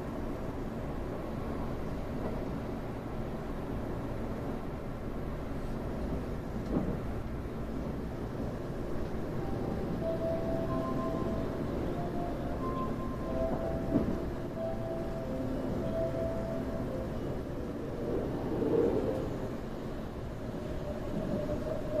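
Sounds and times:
train running gear rumble: 0.0s - 22.0s
faint steady tones: 9.0s - 22.0s.

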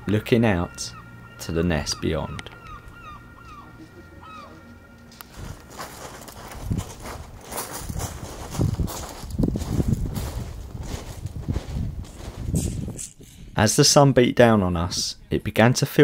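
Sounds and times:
footsteps crunching on shingle: 3.4s - 13.0s.

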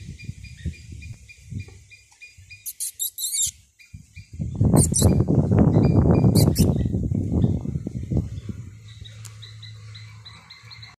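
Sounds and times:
animal chirping: 1.9s - 6.9s.

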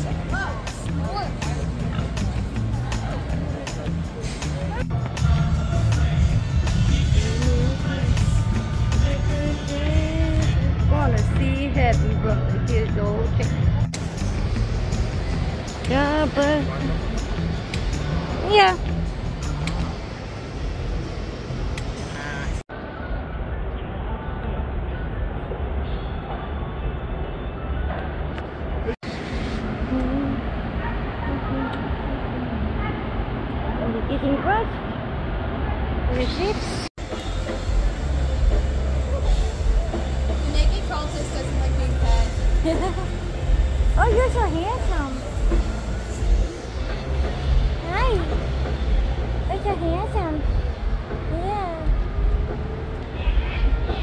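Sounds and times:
music: 0.0s - 22.6s, 37.0s - 54.0s
steady low rumble: 0.0s - 25.8s, 28.7s - 54.0s
crowd voices: 0.0s - 54.0s.

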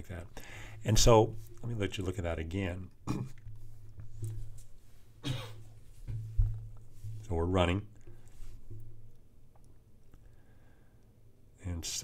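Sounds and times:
man coughing: 3.0s - 3.4s, 5.2s - 5.6s
dull thump: 5.2s - 9.1s.

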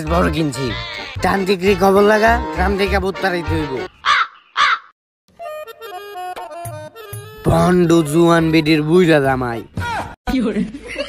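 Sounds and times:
light background music: 0.0s - 3.9s, 5.4s - 9.1s
crow cawing: 4.0s - 5.0s.

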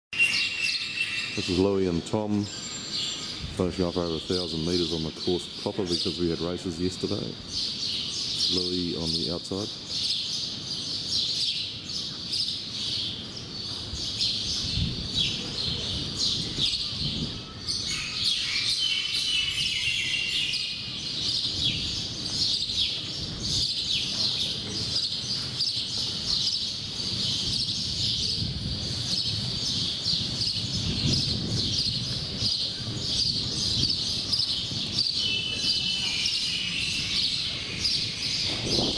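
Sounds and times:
low trilling bird call: 0.1s - 3.6s, 15.2s - 23.0s, 32.6s - 38.9s
birds chirping and twittering: 0.1s - 38.9s.

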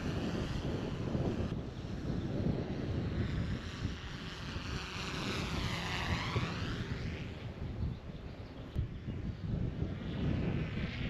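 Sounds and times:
drone propeller whine: 0.0s - 11.0s
wind buffeting microphone: 0.0s - 11.0s.

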